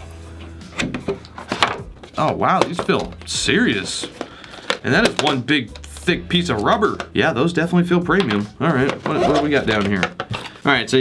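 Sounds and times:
plastic and cardboard rustling: 0.4 - 11.0.

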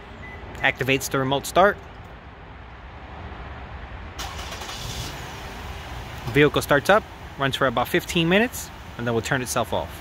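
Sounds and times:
car engine starting: 4.2 - 9.1.

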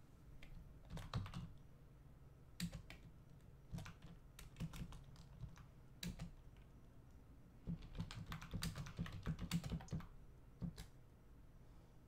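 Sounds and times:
computer keyboard typing: 0.4 - 1.6, 2.6 - 3.1, 3.7 - 6.4, 7.6 - 10.9.

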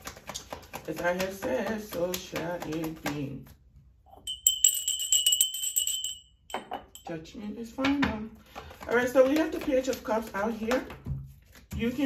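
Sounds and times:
small hand bell ringing: 4.2 - 7.1
woman speaking: 7.0 - 11.0.

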